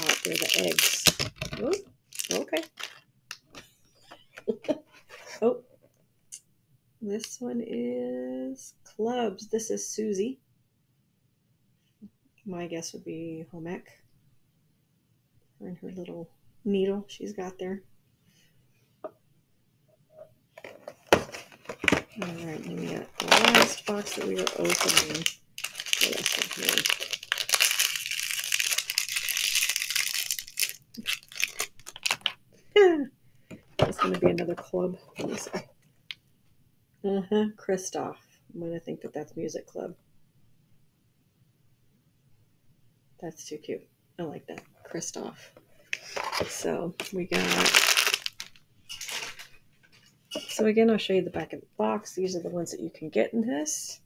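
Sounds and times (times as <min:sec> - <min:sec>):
packaging rustling and clicking: 0:00.0 - 0:03.6, 0:20.6 - 0:32.4, 0:45.9 - 0:49.6
cardboard box rustling and scraping: 0:20.6 - 0:23.8.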